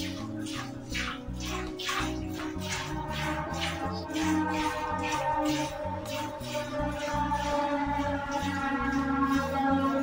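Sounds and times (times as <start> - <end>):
background music: 0.0 - 10.0
milk squirting into steel bucket: 0.0 - 10.0.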